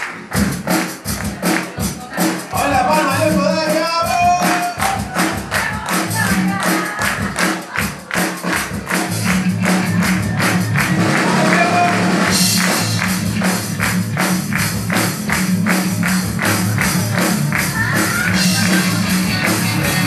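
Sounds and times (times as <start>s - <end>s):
steady percussion beat: 0.0s - 20.0s
electric guitars: 9.0s - 20.0s.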